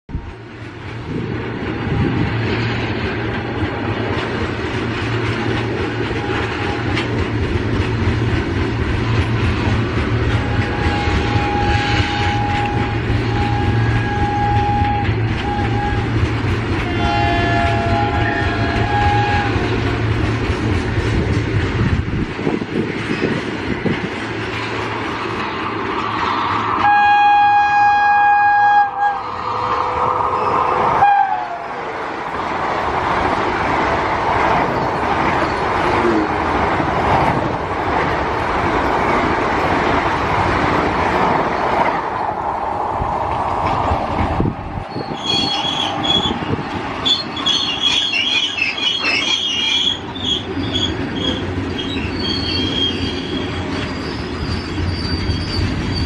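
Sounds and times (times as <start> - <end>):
low rumble of rolling stock: 0.1 - 56.0
train rushing past: 0.1 - 56.0
train horn blasts: 6.0 - 7.2, 10.2 - 20.1, 26.8 - 31.8.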